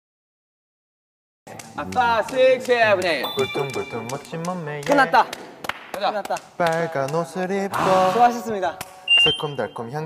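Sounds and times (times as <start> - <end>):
thin high-pitched beep: 3.2 - 4.4, 9.1 - 9.8.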